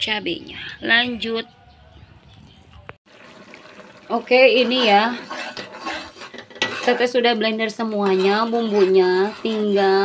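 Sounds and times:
paste simmering in a wok: 3.1s - 10.0s.

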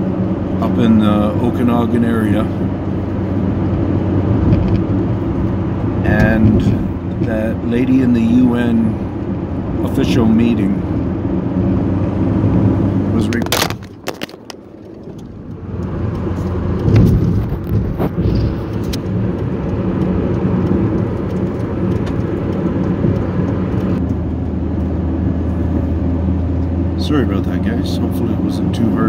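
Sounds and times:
car driving rumble inside cabin: 0.0s - 29.0s.

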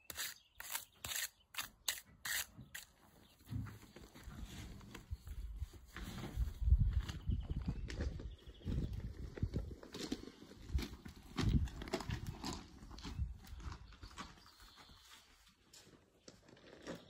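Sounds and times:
footsteps crunching on gravel: 7.8s - 15.3s.

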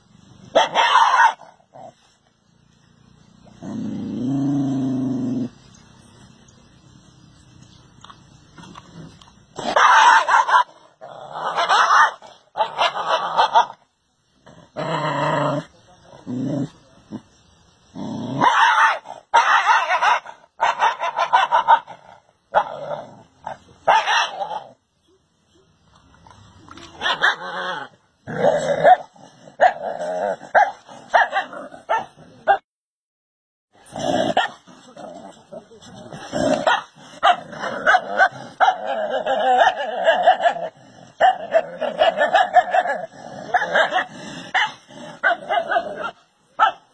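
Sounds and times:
dog barking and yipping: 0.5s - 1.6s, 9.6s - 10.8s, 11.4s - 13.8s, 18.4s - 21.9s, 23.8s - 24.6s, 26.9s - 27.5s, 30.5s - 32.6s, 36.5s - 46.9s.

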